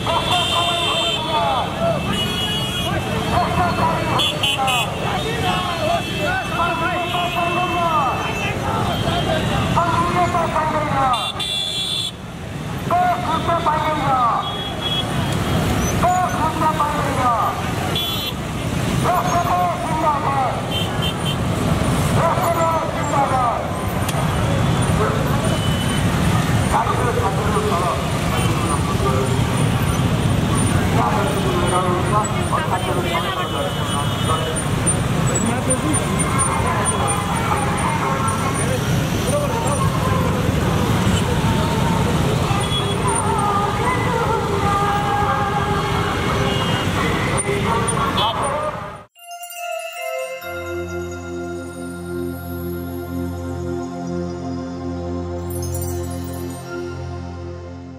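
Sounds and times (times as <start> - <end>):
horns tooting: 0.0 - 44.0, 44.6 - 49.1
motorcycle engines droning: 12.2 - 49.0.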